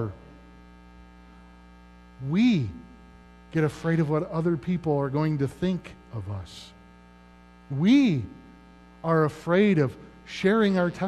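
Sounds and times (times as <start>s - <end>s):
low electrical mains hum: 0.0s - 11.0s
man's voice: 2.2s - 2.9s, 3.6s - 6.7s, 7.7s - 8.4s, 9.0s - 11.0s.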